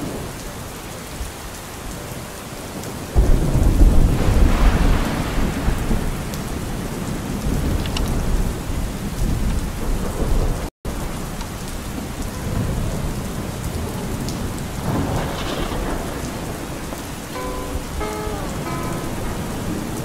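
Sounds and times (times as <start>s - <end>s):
steady rain: 0.0s - 20.0s
low rumble of thunder: 3.2s - 10.7s, 11.6s - 20.0s
short pitched tones: 17.4s - 19.7s.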